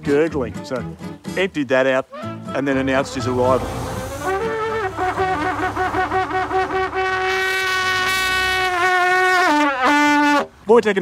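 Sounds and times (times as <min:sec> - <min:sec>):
brass trumpet fanfare: 0:02.1 - 0:10.5.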